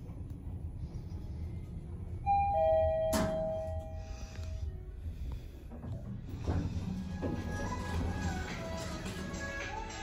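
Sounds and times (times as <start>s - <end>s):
lift arrival chime: 2.2s - 4.6s.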